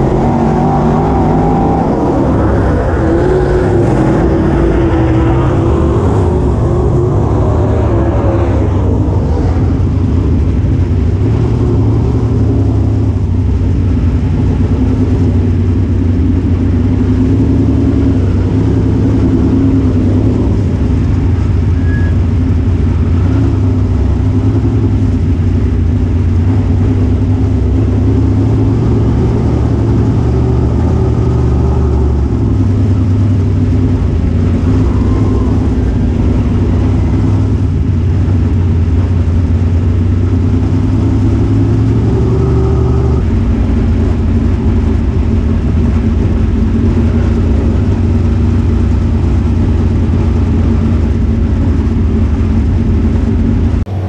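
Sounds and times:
race car engine drone: 0:00.0 - 0:54.0.

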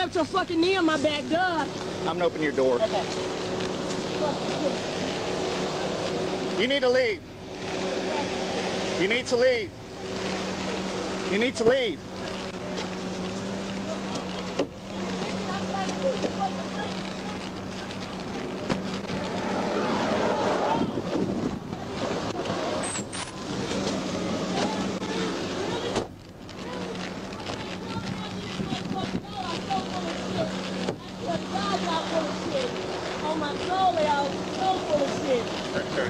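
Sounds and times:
wind and road noise: 0:00.0 - 0:36.0.

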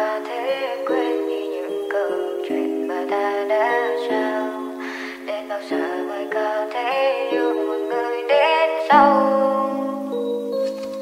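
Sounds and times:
sped-up pop song: 0:00.0 - 0:09.8.

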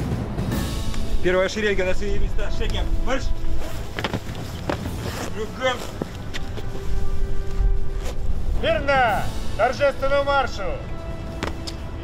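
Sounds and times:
wind buffeting microphone: 0:00.8 - 0:10.2.

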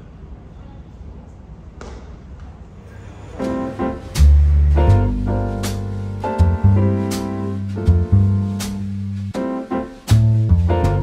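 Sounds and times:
low hall room rumble: 0:00.0 - 0:11.0.

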